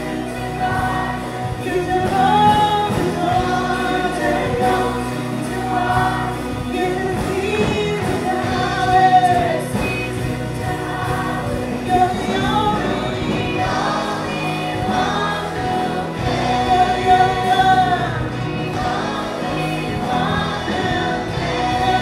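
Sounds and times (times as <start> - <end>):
backing vocals: 0.0 - 22.0
congregation singing along: 0.0 - 22.0
drums: 0.0 - 22.0
electric guitar: 0.0 - 22.0
woman singing lead: 0.0 - 22.0.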